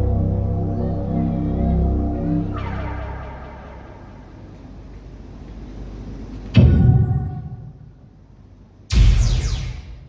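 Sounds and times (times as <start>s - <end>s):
low sustained music notes: 0.0s - 6.5s.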